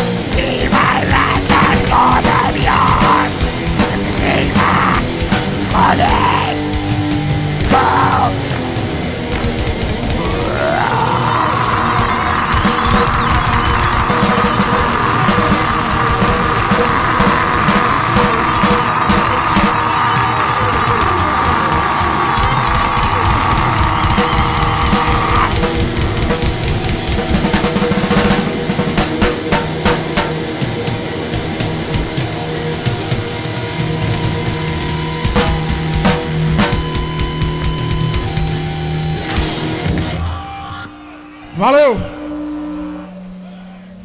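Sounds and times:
metal band playing: 0.0 - 44.0
drum fill: 0.2 - 38.7
amplified instruments droning: 30.4 - 44.0.

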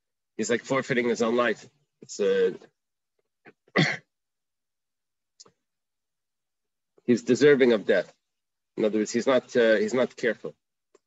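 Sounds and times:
man coughing: 3.6 - 4.1.

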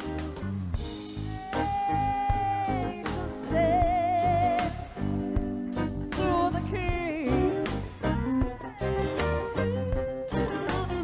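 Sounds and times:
electric guitar: 0.0 - 11.0
live band playing worship song: 0.0 - 11.0.

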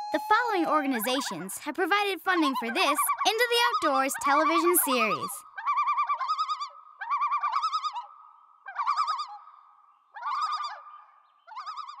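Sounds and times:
loon tremolo call: 0.0 - 7.8.

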